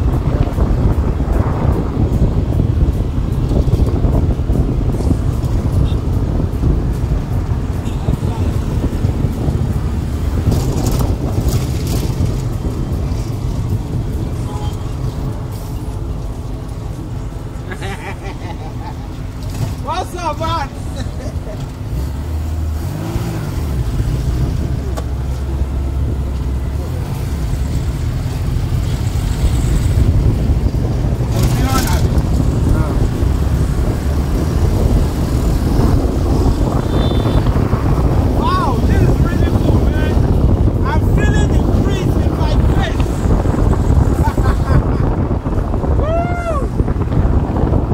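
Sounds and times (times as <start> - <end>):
open car rumbling: 0.0 - 47.9
wind: 0.0 - 47.9.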